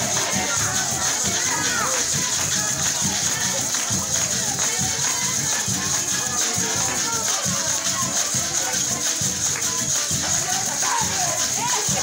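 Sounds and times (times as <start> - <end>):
cuatro strumming: 0.0 - 12.0
maracas shaking: 0.0 - 12.0
violin: 0.0 - 12.0.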